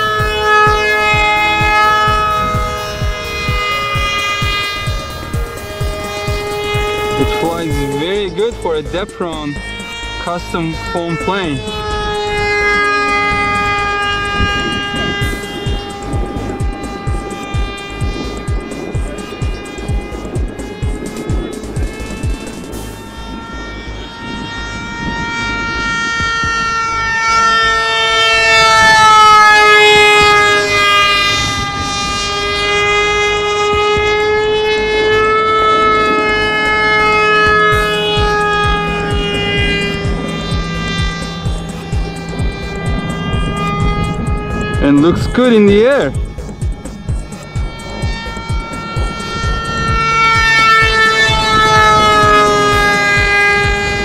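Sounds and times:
model jet motor whining: 0.0 - 54.0.

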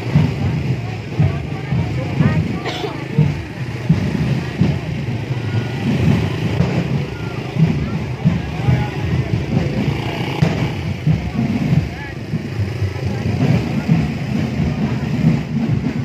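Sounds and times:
crowd voices: 0.0 - 16.0.

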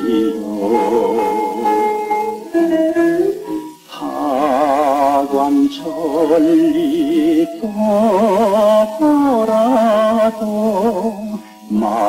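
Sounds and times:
plucked guitar notes: 0.0 - 12.0
singer with vibrato voice: 0.0 - 12.0.

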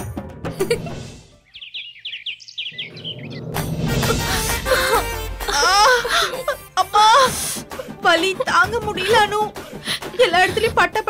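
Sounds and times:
small bird chirping: 1.3 - 3.7.

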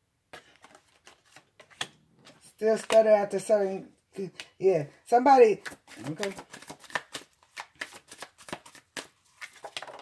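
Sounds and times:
playing cards being shuffled: 0.3 - 3.2, 5.6 - 10.0.

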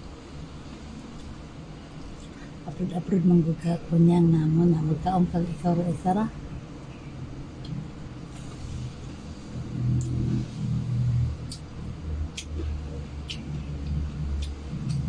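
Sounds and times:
low steady rumble: 0.0 - 15.0.

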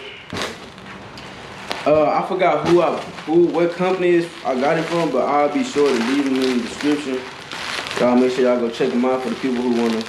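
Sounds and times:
faint steady hiss: 0.0 - 10.0
bubble wrap rustling: 0.3 - 10.0.

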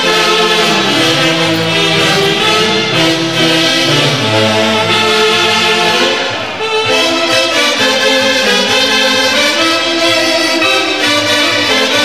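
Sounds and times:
saxophones and clarinets playing: 0.0 - 12.0.

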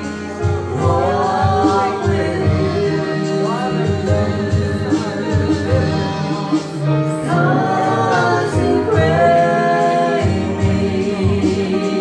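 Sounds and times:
gospel song by amplified voices: 0.0 - 12.0.

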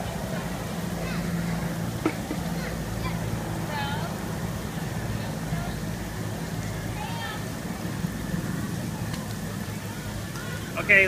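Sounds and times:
sprinkler spray on pavement: 0.0 - 11.0.

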